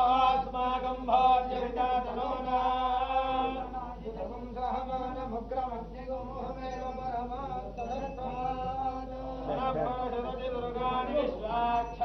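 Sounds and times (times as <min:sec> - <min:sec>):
man chanting mantras: 0:00.0 - 0:12.0.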